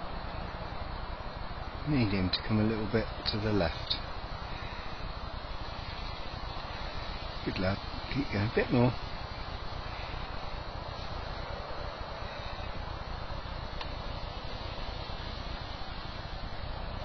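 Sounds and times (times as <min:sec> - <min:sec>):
steady rushing noise: 0:00.0 - 0:17.0
faint click: 0:13.8 - 0:14.0.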